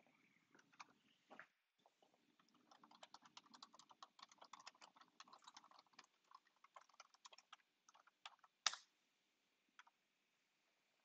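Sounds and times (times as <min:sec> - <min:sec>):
computer keyboard typing: 0:02.4 - 0:08.7.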